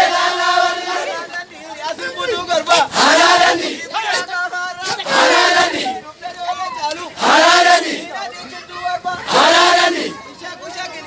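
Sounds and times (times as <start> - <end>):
men chanting in unison: 0.0 - 6.1, 7.0 - 8.2, 9.0 - 10.2
loud shouted calls: 2.0 - 10.6.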